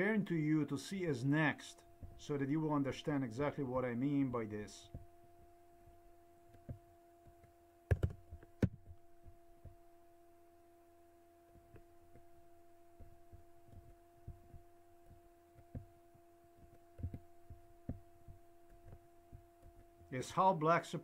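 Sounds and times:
steady low hum: 0:00.0 - 0:21.0
keyboard keystrokes and clicks: 0:07.9 - 0:08.9.

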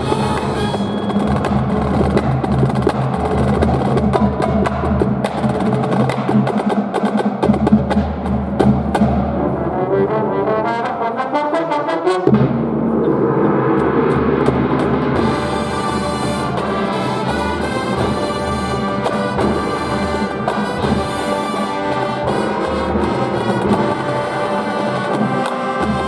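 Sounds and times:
drums: 0:00.0 - 0:10.7, 0:11.4 - 0:26.0
sustained brass chords: 0:09.5 - 0:26.0.

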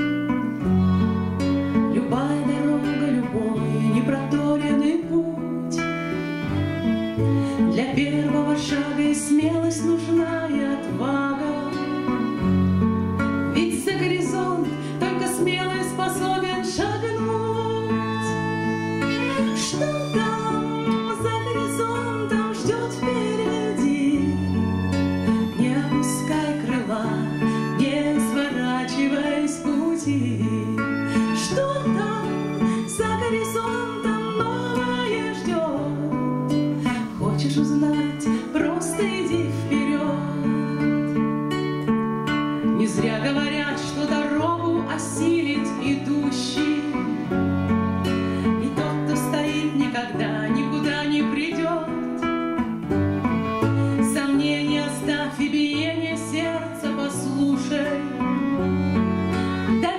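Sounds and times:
bowed violin: 0:00.0 - 0:59.9
strummed acoustic guitar: 0:00.0 - 0:59.9
woman singing: 0:01.4 - 0:12.8, 0:13.4 - 0:52.7, 0:53.6 - 0:58.6, 0:59.4 - 0:59.9.

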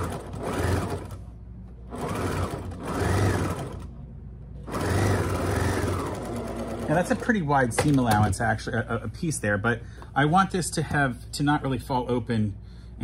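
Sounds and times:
sewing machine stitching: 0:00.0 - 0:01.3, 0:01.9 - 0:04.0, 0:04.6 - 0:07.4.

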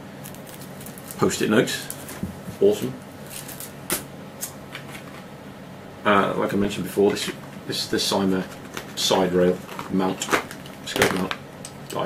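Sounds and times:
packaging rustling: 0:00.2 - 0:03.7, 0:08.4 - 0:11.4.

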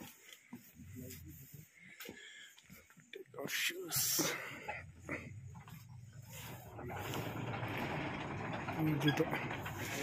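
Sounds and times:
metal prayer wheels creaking: 0:05.5 - 0:10.0.

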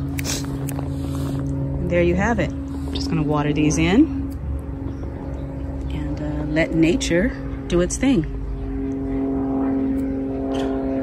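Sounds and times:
steady motor hum: 0:00.0 - 0:11.0.

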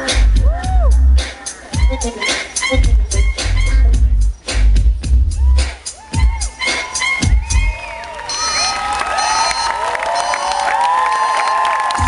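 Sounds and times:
dance music with heavy bass: 0:00.0 - 0:08.7
crowd cheering and whooping: 0:00.3 - 0:01.2, 0:05.2 - 0:12.0.

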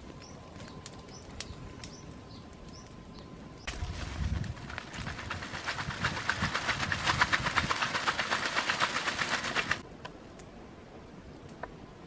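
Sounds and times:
wood fire crackling and popping: 0:00.0 - 0:03.0, 0:03.6 - 0:09.8.

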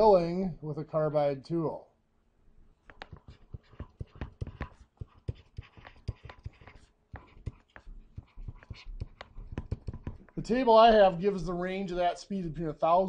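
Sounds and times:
stylus tapping on tablet: 0:02.8 - 0:10.4.

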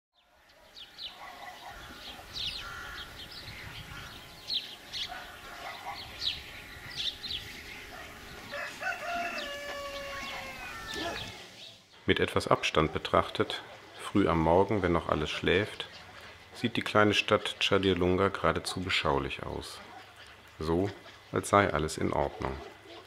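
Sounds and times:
small birds chirping: 0:00.2 - 0:23.0
rooster crowing: 0:08.0 - 0:11.4.

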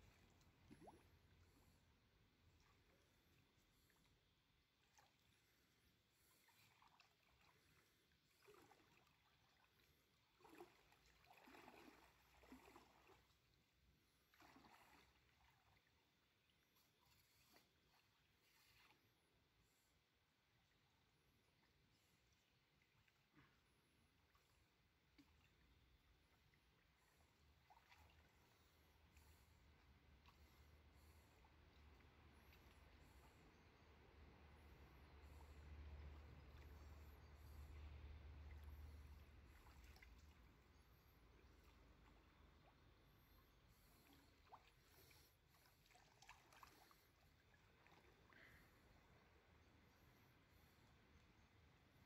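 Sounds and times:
faint stream water: 0:00.0 - 0:52.0.

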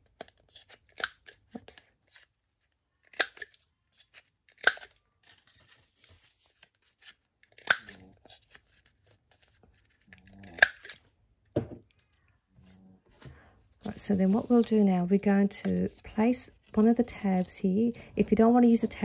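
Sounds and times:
paper rustling: 0:05.0 - 0:10.2, 0:12.6 - 0:19.0.

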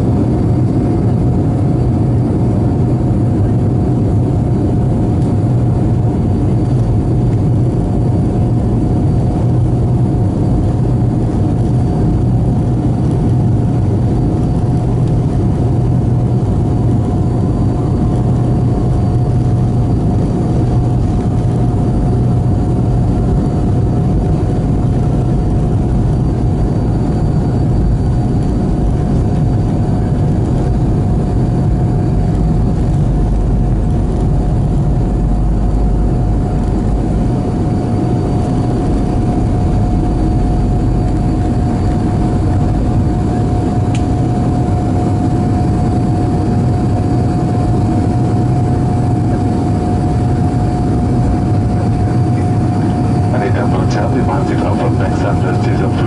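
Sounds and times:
deep engine rush in cabin: 0:00.0 - 0:56.0
jet engines high whine: 0:00.0 - 0:56.0.

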